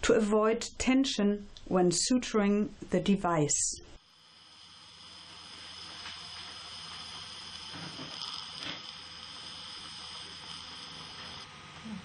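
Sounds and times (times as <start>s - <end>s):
surgical suction hissing: 3.8s - 11.5s
suction slurps: 4.0s - 11.5s.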